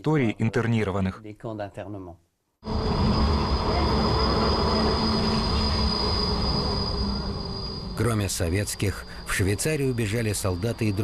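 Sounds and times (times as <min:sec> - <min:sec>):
tram wheels rumbling: 0:02.6 - 0:11.0
high-pitched wheel squeal: 0:02.7 - 0:11.0.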